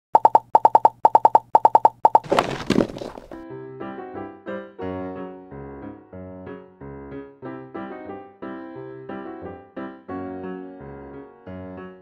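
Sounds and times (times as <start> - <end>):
pitched plopping sound effects: 0.2 - 2.3.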